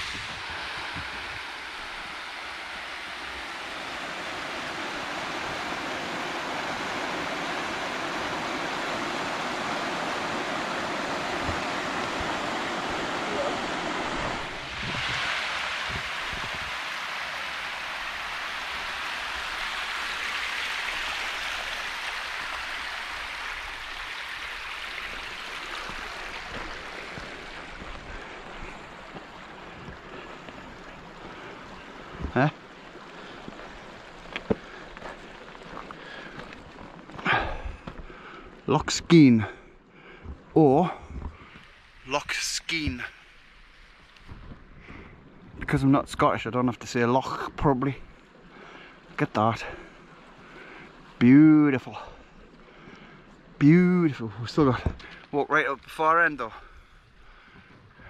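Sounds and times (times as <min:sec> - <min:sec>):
rushing falling water: 0:00.0 - 0:58.0
stream splashing over boulders: 0:00.0 - 0:58.0.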